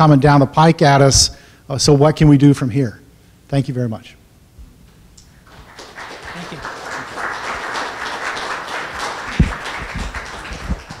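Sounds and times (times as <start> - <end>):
audience applauding: 5.4 - 11.0.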